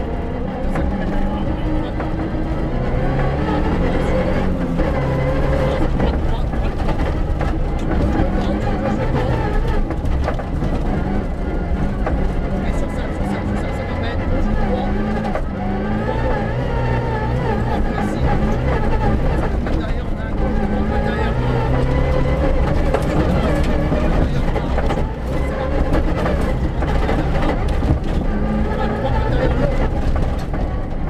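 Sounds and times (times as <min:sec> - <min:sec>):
rally car engine revving: 0:00.0 - 0:31.0
tyres rumbling on loose ground: 0:00.0 - 0:31.0.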